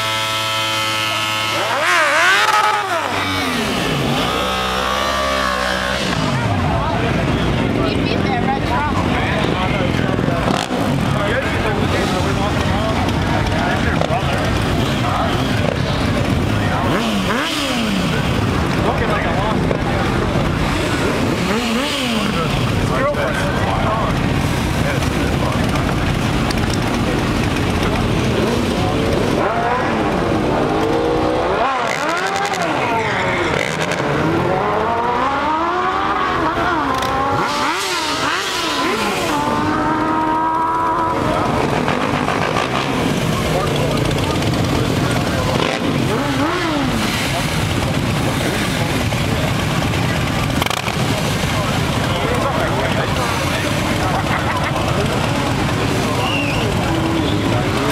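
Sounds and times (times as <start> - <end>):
motorcycle engine revving hard: 0.0 - 57.9.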